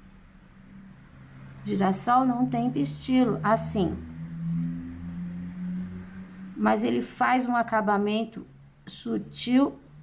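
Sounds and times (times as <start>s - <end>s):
low sustained hum: 0.0s - 10.0s.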